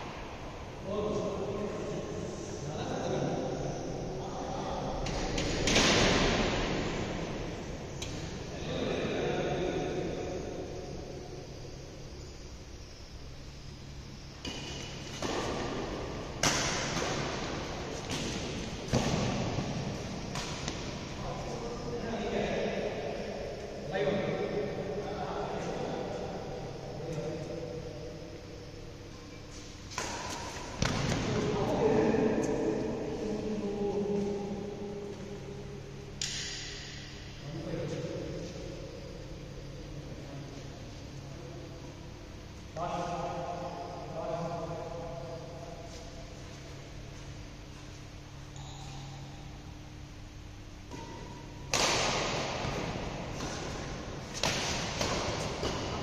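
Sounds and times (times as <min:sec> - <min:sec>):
rackets hitting shuttlecock: 0:05.0 - 0:08.4, 0:14.4 - 0:21.6, 0:29.9 - 0:31.6, 0:36.2 - 0:37.2, 0:50.8 - 0:56.0.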